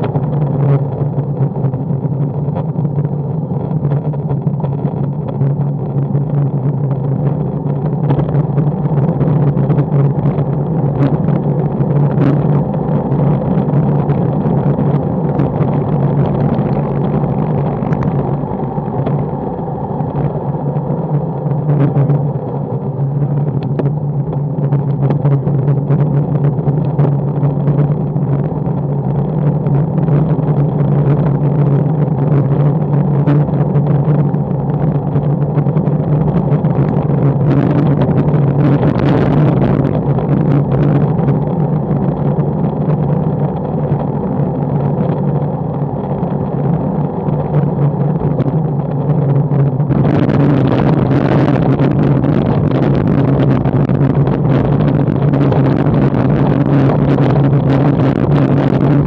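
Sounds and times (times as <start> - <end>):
bike tyre and road rumble: 0.0 - 59.0
wind rushing over microphone: 0.0 - 59.0.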